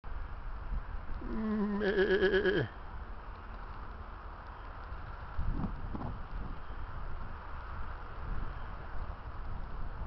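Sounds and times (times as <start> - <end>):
sheep bleating: 1.2 - 2.7.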